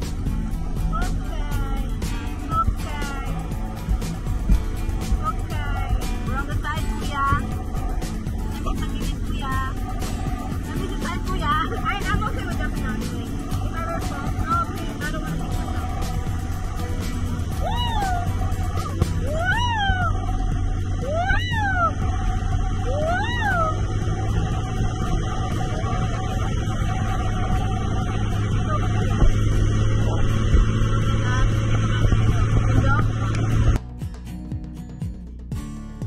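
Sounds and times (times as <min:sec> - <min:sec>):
wind rushing on microphone: 0:00.0 - 0:33.8
background music: 0:00.0 - 0:36.0
rising and falling calls: 0:14.9 - 0:22.2.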